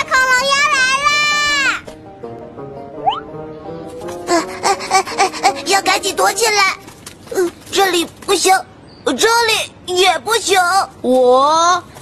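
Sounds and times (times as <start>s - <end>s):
light background music: 0.0s - 7.3s.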